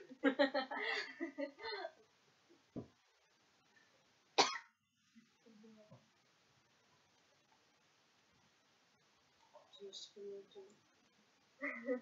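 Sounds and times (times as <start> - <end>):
person coughing: 4.4 - 4.7.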